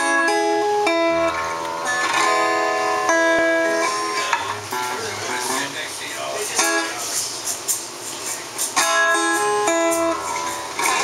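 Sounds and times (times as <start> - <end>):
acoustic guitar picking: 0.0 - 11.0
room noise hiss: 0.0 - 11.0.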